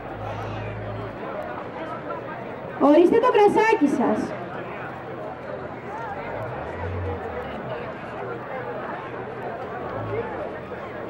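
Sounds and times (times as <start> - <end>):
murmur of audience voices: 0.0 - 11.0.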